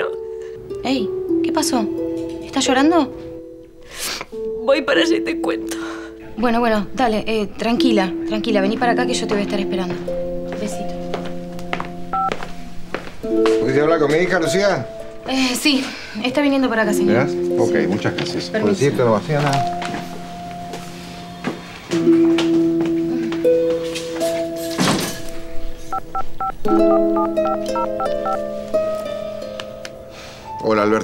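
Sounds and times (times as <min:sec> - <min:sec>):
background music: 0:00.0 - 0:31.0
two-tone keypad beep: 0:25.9 - 0:28.4.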